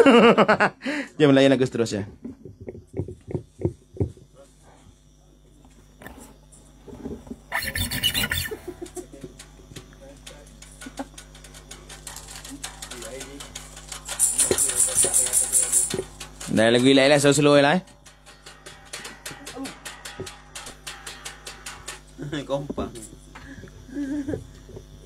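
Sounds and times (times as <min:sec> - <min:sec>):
tambourine jingling: 0:10.1 - 0:23.2.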